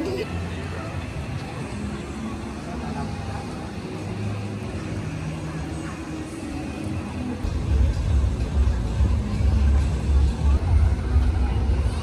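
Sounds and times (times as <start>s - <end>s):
steady low rumble: 7.4s - 12.0s.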